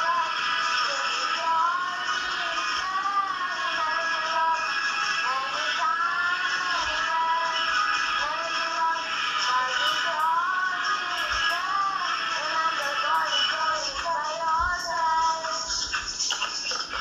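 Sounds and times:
worship song with singing: 0.0s - 17.0s.

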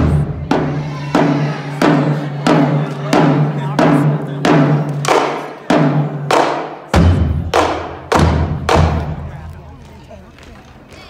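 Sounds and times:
marching drumline unison hits: 0.0s - 9.4s.

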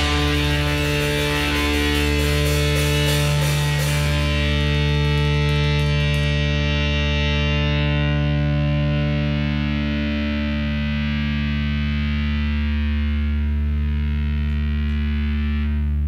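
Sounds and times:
distorted guitar and bass chord: 0.0s - 16.0s.

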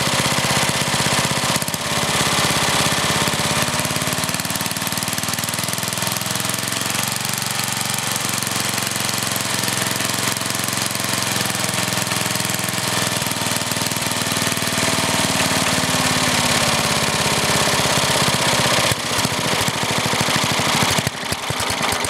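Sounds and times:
small engine idling: 0.0s - 22.0s.

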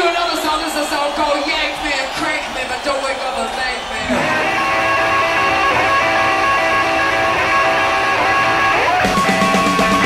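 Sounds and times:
electric guitar with slides: 4.0s - 10.0s.

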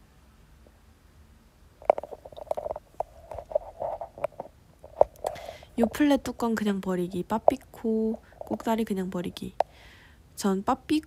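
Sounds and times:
phone handling clicks and rustling: 1.8s - 5.4s.

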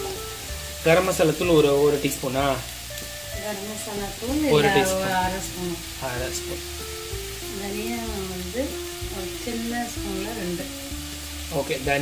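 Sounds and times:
food sizzling in oil: 0.0s - 12.0s
held musical tones: 0.0s - 12.0s.

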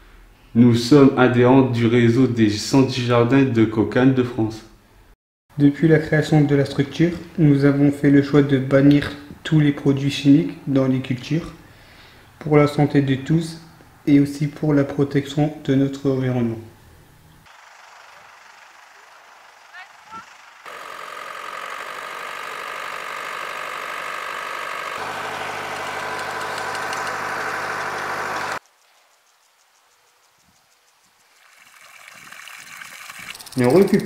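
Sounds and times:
tractor engine running: 17.5s - 28.6s
water pouring into a basin: 31.4s - 33.7s.

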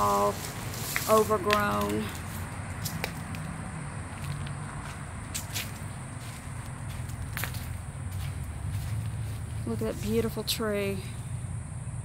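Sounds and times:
footsteps walking: 0.0s - 3.5s, 4.1s - 10.5s.

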